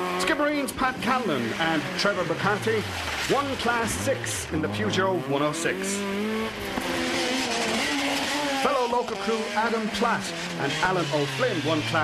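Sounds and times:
car engine at high revs: 0.0 - 12.0.

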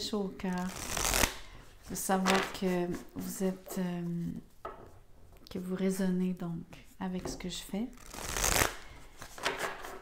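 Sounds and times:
cards being shuffled: 0.6 - 3.2, 8.0 - 10.0.

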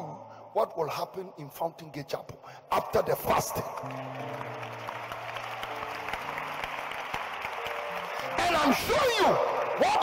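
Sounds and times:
congregation applauding: 2.7 - 10.0.

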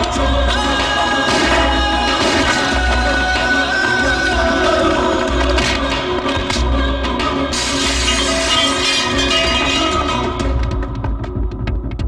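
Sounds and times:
action film score: 0.0 - 12.0.

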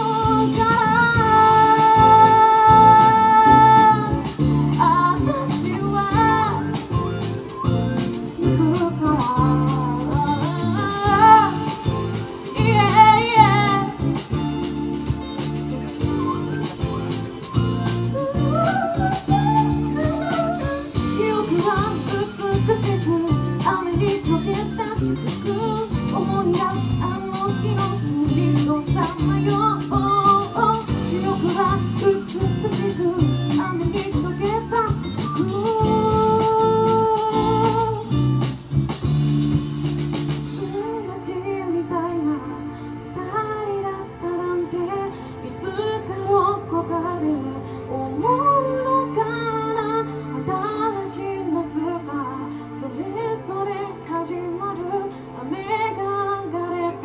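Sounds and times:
live band playing pop-rock: 0.0 - 43.9, 44.5 - 57.0
person singing: 18.1 - 34.7.

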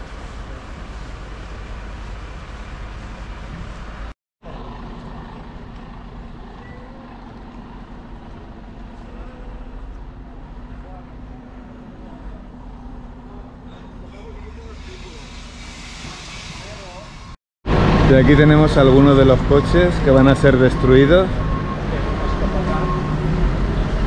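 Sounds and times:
hiss: 14.6 - 17.4.

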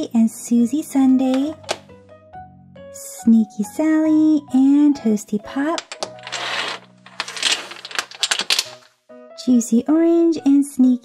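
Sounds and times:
domino tiles clacking and sliding: 5.7 - 8.9.

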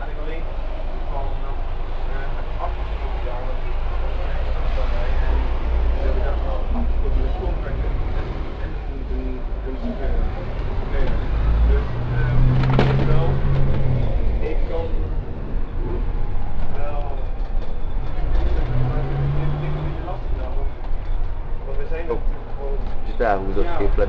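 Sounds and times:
bus engine and road rumble: 0.0 - 24.0
passengers talking indistinctly: 0.0 - 24.0.

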